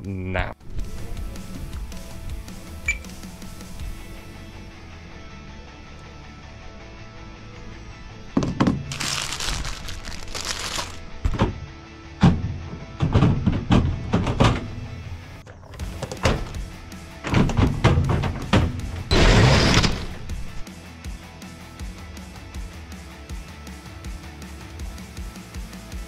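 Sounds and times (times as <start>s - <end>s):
background music: 0.0s - 26.0s
plastic totes knocking and clattering: 8.4s - 16.6s, 17.2s - 19.0s.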